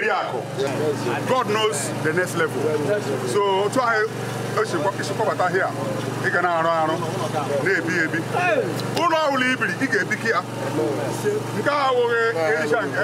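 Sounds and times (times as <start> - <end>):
men speaking and exclaiming: 0.0 - 13.0.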